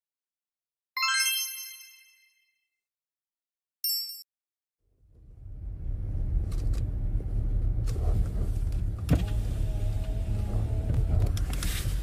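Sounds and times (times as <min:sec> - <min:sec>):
bell-like chime ding: 0:01.0 - 0:02.5.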